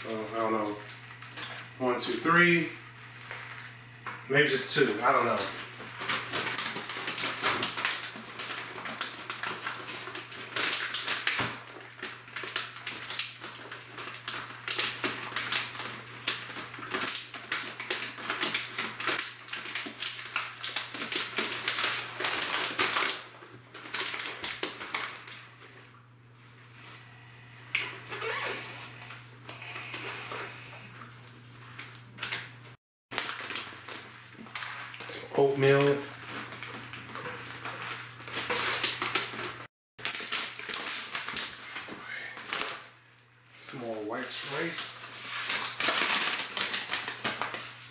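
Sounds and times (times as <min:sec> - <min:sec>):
foil bags crinkling: 0:00.0 - 0:47.9.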